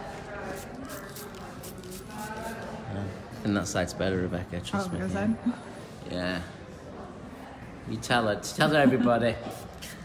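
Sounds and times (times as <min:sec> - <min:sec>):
spray bottle hissing: 0:09.4 - 0:10.0.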